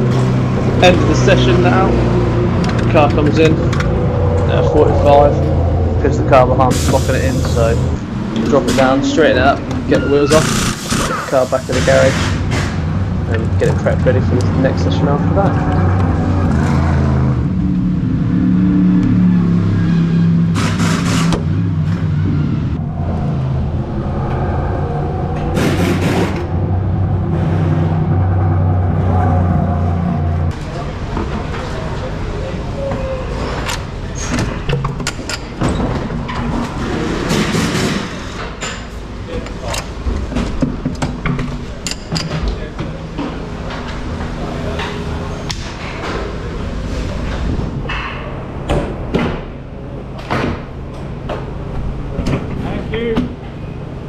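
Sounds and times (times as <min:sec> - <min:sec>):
loud hissing bursts: 0:06.7 - 0:08.0.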